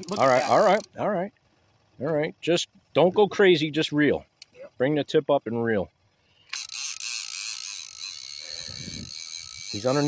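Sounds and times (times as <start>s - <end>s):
fishing reel whirring: 0.0s - 0.9s, 6.2s - 10.0s.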